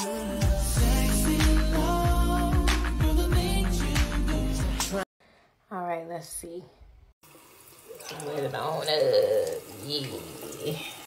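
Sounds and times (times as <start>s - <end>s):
faucet water running into sink: 7.2s - 11.0s.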